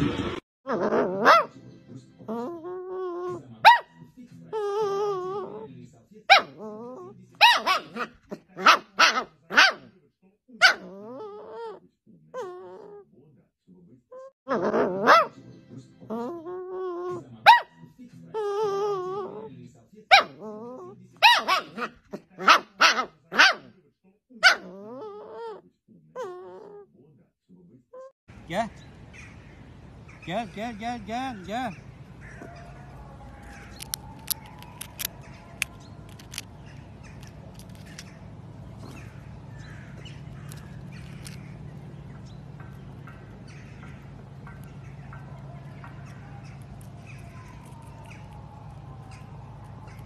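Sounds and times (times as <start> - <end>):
puppy whining: 0.7 - 1.5, 2.2 - 3.9, 4.5 - 5.7, 6.3 - 9.2, 10.6 - 13.1, 14.1 - 15.3, 16.0 - 17.6, 18.3 - 19.5, 20.1 - 23.1, 24.4 - 26.9, 32.2 - 41.7, 42.7 - 50.0
puppy yipping: 0.7 - 1.6, 2.3 - 5.7, 6.3 - 9.9, 10.6 - 11.8, 12.4 - 13.0, 14.2 - 15.4, 16.1 - 17.8, 18.4 - 19.5, 20.1 - 23.7, 24.4 - 25.6, 26.2 - 26.8, 32.2 - 41.5, 42.6 - 50.0.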